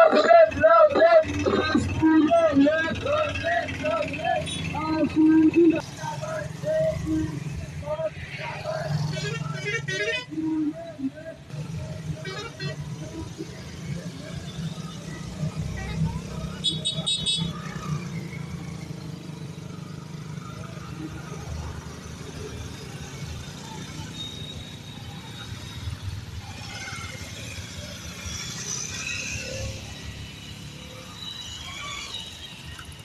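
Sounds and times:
people's voices: 0.0s - 17.9s
horns beeping: 0.0s - 18.2s
motorcycle engines humming: 0.0s - 33.0s.

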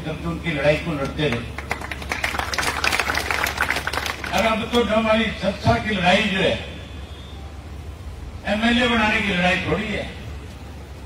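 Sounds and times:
crowd applauding: 1.3s - 4.8s.

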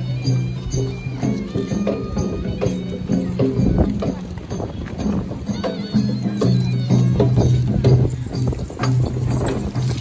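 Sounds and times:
drums beating: 0.0s - 10.0s.

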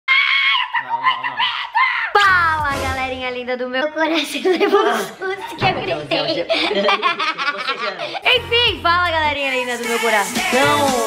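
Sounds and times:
lower voice shrieking: 0.1s - 2.3s
woman screaming: 0.1s - 2.6s.

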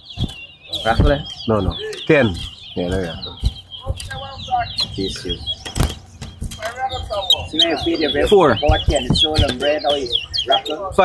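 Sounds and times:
finches singing: 0.0s - 11.0s
voices murmuring: 0.0s - 11.0s
sharp taps: 0.2s - 10.7s.

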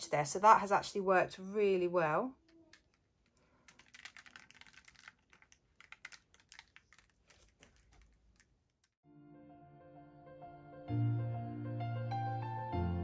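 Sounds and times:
paint dripping onto paper: 2.4s - 9.0s.

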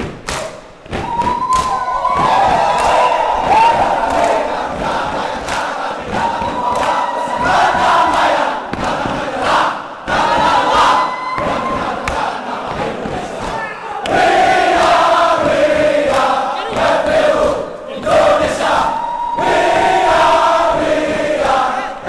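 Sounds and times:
sharp percussive slaps: 0.0s - 10.6s, 11.4s - 18.6s
group chanting and shouting: 0.2s - 22.0s.

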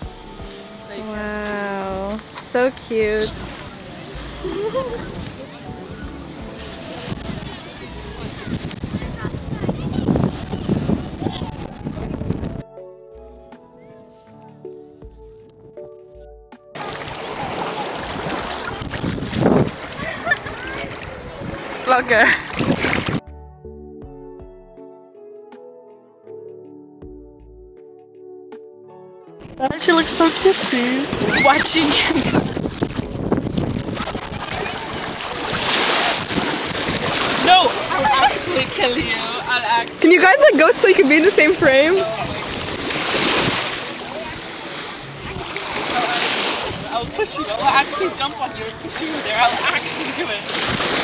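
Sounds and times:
seawater washing and splashing: 0.0s - 12.5s, 16.8s - 23.2s, 29.8s - 51.0s
wind on microphone: 0.0s - 12.7s, 16.8s - 23.2s, 29.4s - 48.9s, 50.5s - 51.0s
soft background music: 0.0s - 51.0s.

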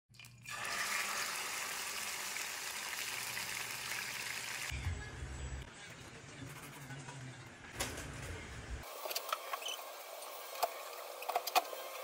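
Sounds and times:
meat sizzling in hot oil: 0.5s - 4.7s.

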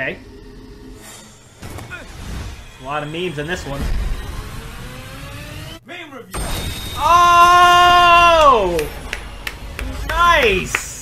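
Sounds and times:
rising tone: 0.0s - 5.8s.

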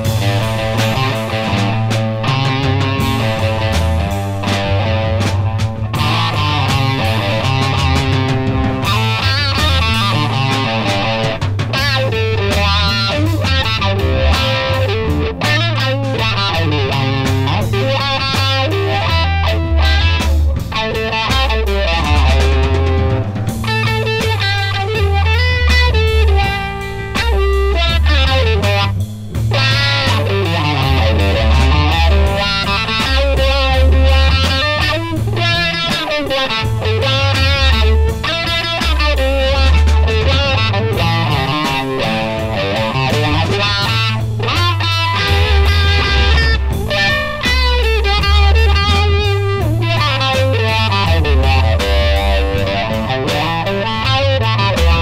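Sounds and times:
bass guitar: 0.0s - 55.0s
steady drum beat: 0.0s - 55.0s
wah-wah electric guitar: 0.0s - 55.0s.

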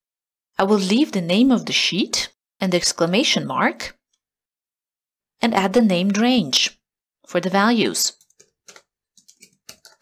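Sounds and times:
typing on a computer keyboard: 8.2s - 10.0s.

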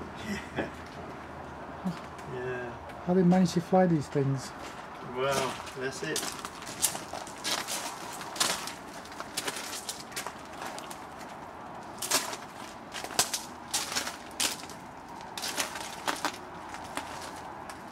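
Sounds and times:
footsteps on wood chips: 4.6s - 17.9s.

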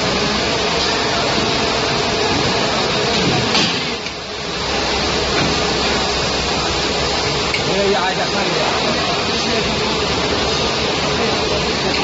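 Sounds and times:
injection molding machine running: 0.0s - 12.0s.

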